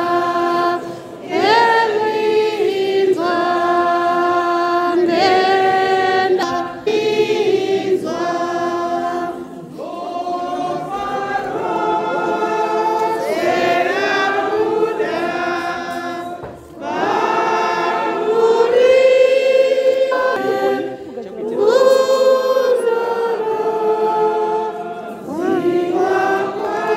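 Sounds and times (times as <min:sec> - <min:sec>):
congregation singing a hymn: 0:00.0 - 0:26.9.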